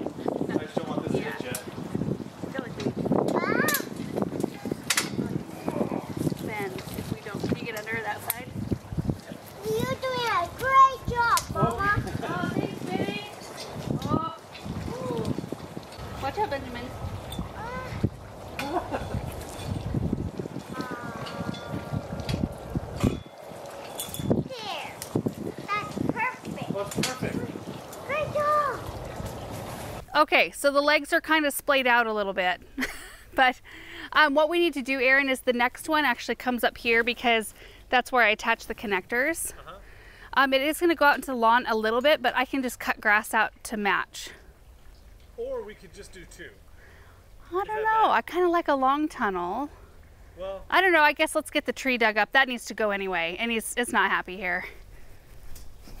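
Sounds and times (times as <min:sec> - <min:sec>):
child calling: 0:03.3 - 0:03.9, 0:09.6 - 0:12.0, 0:17.5 - 0:18.1, 0:24.4 - 0:25.0, 0:28.0 - 0:28.9.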